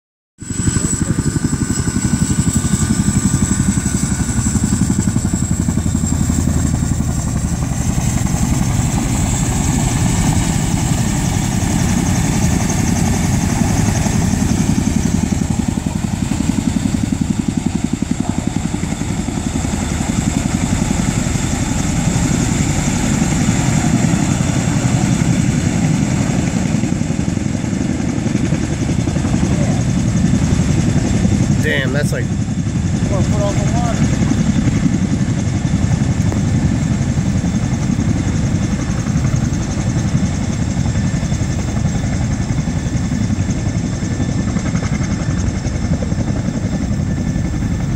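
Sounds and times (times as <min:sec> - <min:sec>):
helicopter rotor chop: 0:00.4 - 0:47.9
high turbine whine: 0:00.4 - 0:47.9.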